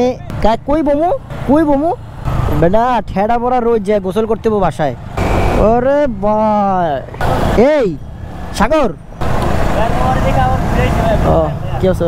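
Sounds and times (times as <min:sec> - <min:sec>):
man talking: 0:00.0 - 0:05.0, 0:05.6 - 0:09.0, 0:09.7 - 0:12.0.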